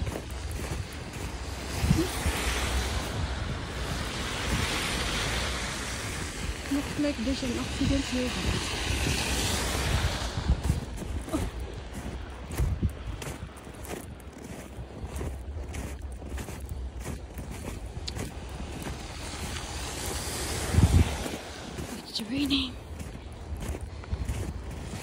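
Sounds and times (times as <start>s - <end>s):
footsteps crunching through snow: 0.0s - 25.0s
wind rumbling on microphone: 0.0s - 25.0s.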